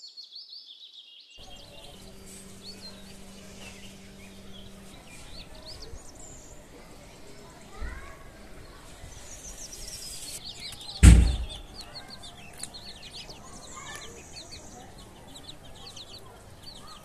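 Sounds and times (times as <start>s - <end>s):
chicks peeping: 0.1s - 17.0s
loud thump: 11.0s - 11.7s.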